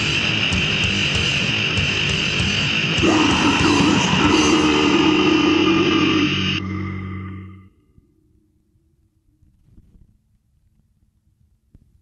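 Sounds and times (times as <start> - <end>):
drums: 0.0 - 7.3
distorted guitars: 0.0 - 10.0.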